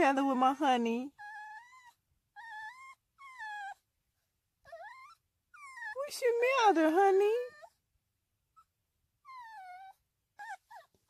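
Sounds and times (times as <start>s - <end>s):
puppy whining: 1.1s - 3.9s, 4.6s - 7.8s, 8.5s - 11.0s.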